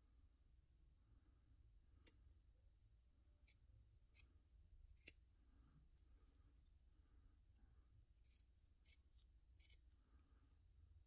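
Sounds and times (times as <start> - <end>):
scissors snipping: 8.2 - 9.8.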